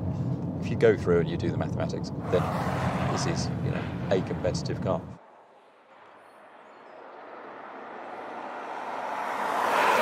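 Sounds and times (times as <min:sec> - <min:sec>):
car passing by: 0:02.2 - 0:04.4, 0:05.2 - 0:10.0.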